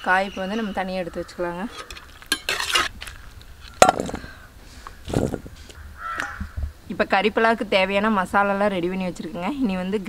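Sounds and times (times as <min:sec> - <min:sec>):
metal ladle scraping a wok: 0:01.6 - 0:03.0
ladle clinking on steel bowl: 0:01.8 - 0:02.9.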